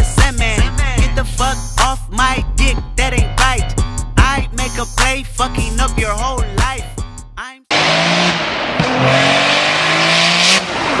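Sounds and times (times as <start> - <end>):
car engine and exhaust running: 7.7 - 11.0.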